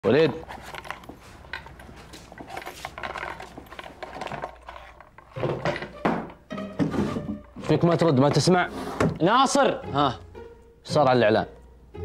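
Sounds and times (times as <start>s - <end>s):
objects handled in paper bag: 0.1s - 5.8s
metallic clinks: 0.4s - 6.0s.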